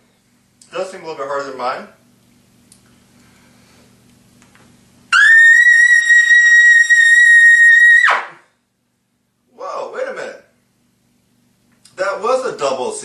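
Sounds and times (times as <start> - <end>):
trumpet playing high note: 5.2 - 8.4.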